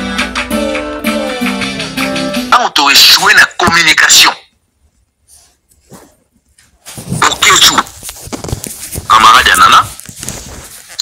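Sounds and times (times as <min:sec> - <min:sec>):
person speaking: 0:02.5 - 0:04.5, 0:07.0 - 0:11.0.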